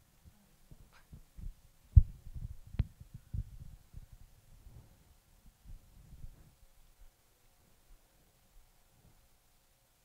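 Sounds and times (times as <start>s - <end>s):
microphone handling thumps: 0.7s - 5.0s.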